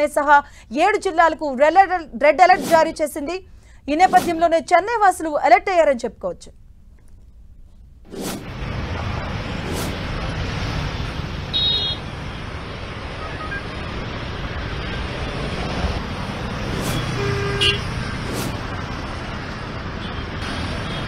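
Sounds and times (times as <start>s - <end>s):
street traffic rush: 2.3s - 4.8s, 6.6s - 21.0s
car horn toots: 11.5s - 12.0s, 17.0s - 17.9s.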